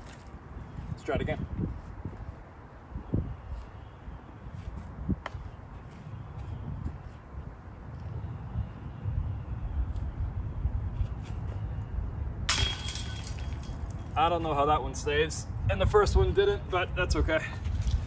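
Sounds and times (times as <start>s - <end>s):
disc hitting metal chains: 12.5s - 14.2s.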